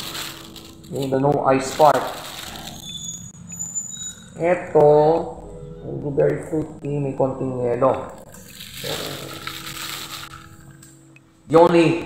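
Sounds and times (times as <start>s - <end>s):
plastic bags rustling: 0.0s - 3.2s, 8.2s - 10.8s.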